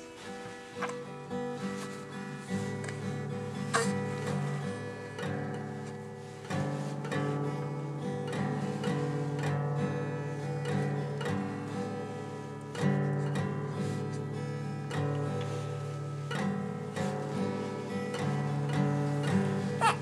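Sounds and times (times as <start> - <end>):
guitar picked and strummed: 0.0 - 20.0.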